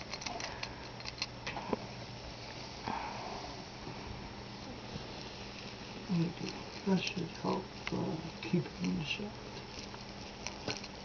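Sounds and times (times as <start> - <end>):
kitten claws scratching: 5.6 - 11.0.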